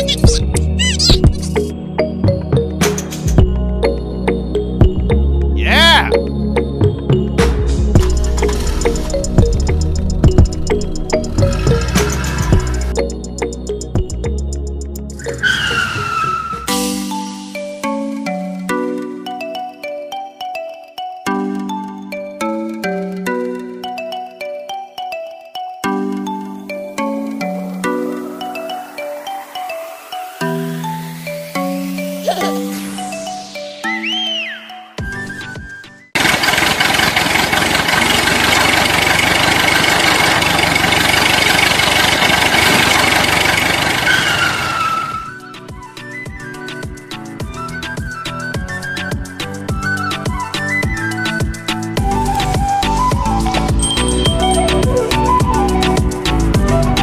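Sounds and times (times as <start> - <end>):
tone sliding down in pitch: 0.0 - 1.7
background music: 0.0 - 36.2, 44.8 - 57.0
loud engine noise: 8.0 - 12.9, 36.2 - 45.4
tire squeal whistle: 15.2 - 16.9, 33.9 - 36.1, 44.0 - 46.5, 52.0 - 57.0
short music: 53.6 - 55.4.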